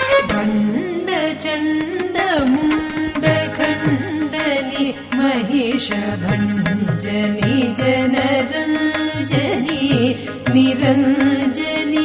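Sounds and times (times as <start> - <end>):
violin: 0.0 - 10.8
percussion accompaniment: 0.0 - 12.0.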